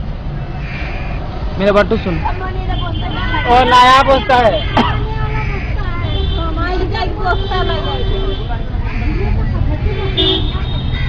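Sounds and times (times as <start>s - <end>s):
roadside traffic rumble: 0.0s - 11.0s
vehicle horn tooting: 10.1s - 11.0s.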